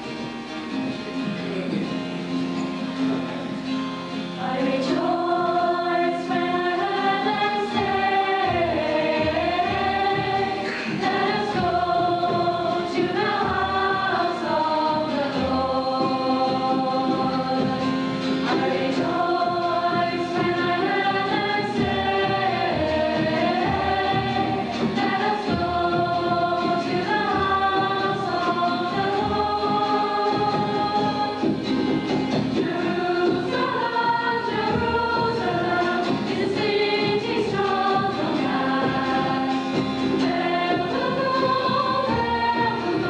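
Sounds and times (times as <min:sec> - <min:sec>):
children's choir singing: 0:04.1 - 0:43.0.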